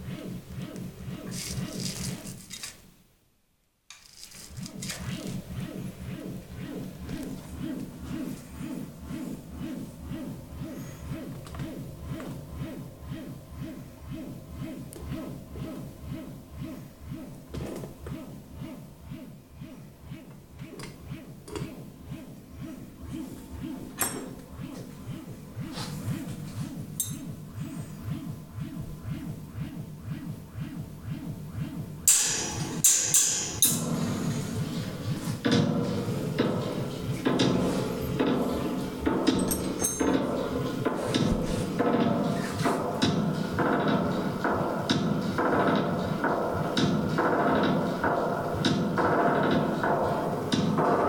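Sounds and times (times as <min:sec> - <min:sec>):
low electronic pulse: 0:00.0 - 0:02.4, 0:04.4 - 0:51.0
wavering pitched tones: 0:18.0 - 0:35.4.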